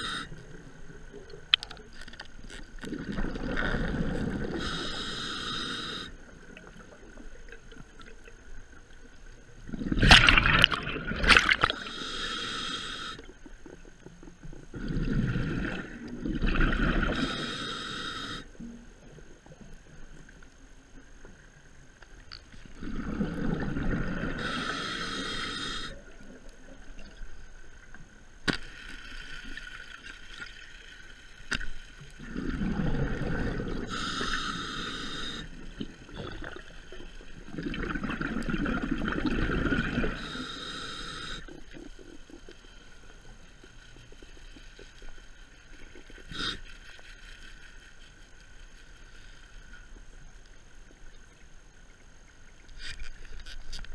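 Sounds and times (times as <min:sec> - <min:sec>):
diver breathing through regulator: 0:00.0 - 0:00.4, 0:03.6 - 0:06.2, 0:11.6 - 0:13.3, 0:17.0 - 0:18.5, 0:22.8 - 0:26.1, 0:32.4 - 0:35.6, 0:39.7 - 0:41.6, 0:46.3 - 0:46.7.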